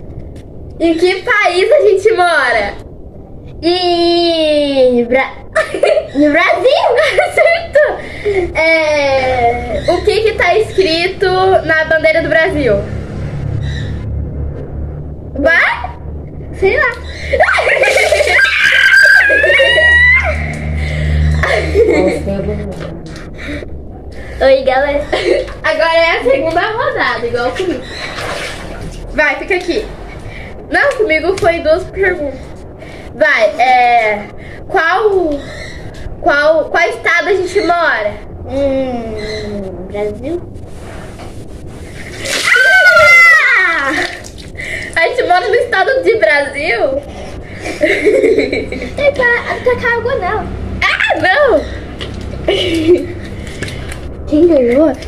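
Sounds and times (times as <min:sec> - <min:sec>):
water splashing: 0:16.9 - 0:21.8, 0:27.4 - 0:29.2, 0:41.7 - 0:45.2
girl screaming: 0:17.2 - 0:20.5, 0:42.3 - 0:44.2
giggling: 0:17.4 - 0:22.8, 0:47.5 - 0:49.8, 0:52.5 - 0:53.2.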